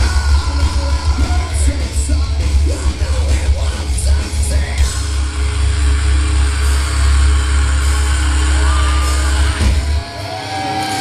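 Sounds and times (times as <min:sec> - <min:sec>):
low bass drone: 0:02.1 - 0:10.1.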